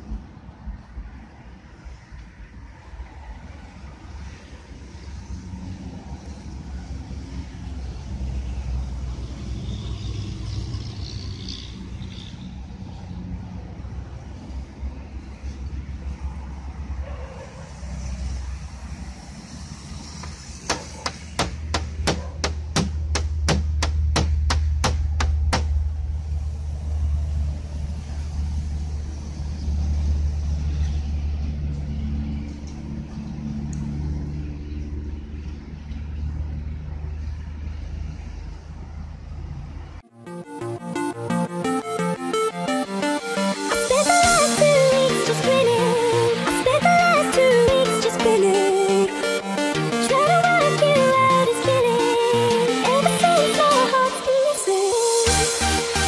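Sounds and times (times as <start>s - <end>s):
vehicle rumble: 0.0s - 40.1s.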